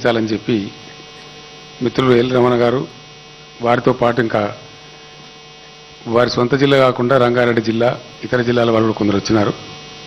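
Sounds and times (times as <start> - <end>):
electrical mains hum: 0.0 - 10.0
man speaking: 1.8 - 3.0, 3.6 - 4.7, 6.0 - 9.7.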